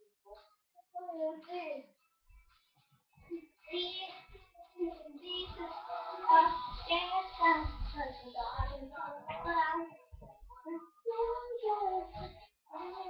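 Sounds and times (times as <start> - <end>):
girl singing: 3.7 - 13.0.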